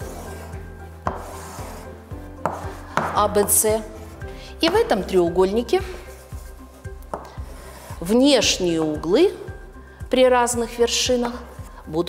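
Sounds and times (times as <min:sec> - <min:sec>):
chalk tapping on chalkboard: 0:00.0 - 0:05.1, 0:06.2 - 0:08.5
chalk rubbing strokes: 0:00.0 - 0:09.0.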